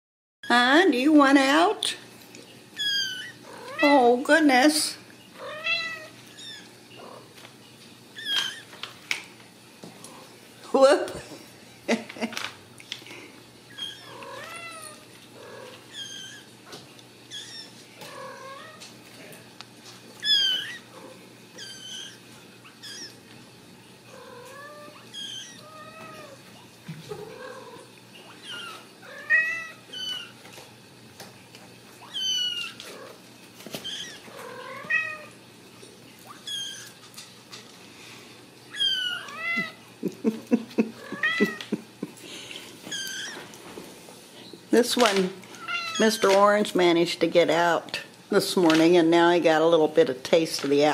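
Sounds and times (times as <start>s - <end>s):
kittens meowing: 2.8s - 4.0s, 5.4s - 7.3s, 8.1s - 8.8s, 13.7s - 16.6s, 17.2s - 18.9s, 20.2s - 23.2s, 24.1s - 26.4s, 27.1s - 30.4s, 32.0s - 33.2s, 33.8s - 35.4s, 36.3s - 37.0s, 38.7s - 39.8s, 40.9s - 41.8s, 42.8s - 43.4s, 45.5s - 46.4s.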